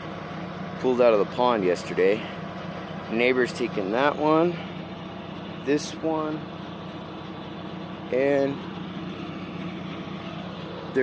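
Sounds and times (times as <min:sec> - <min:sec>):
loader engine idling: 0:00.0 - 0:11.0.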